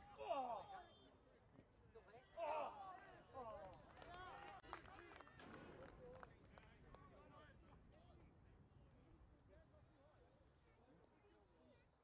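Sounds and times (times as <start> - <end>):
faint shouts of players: 2.2 - 3.0.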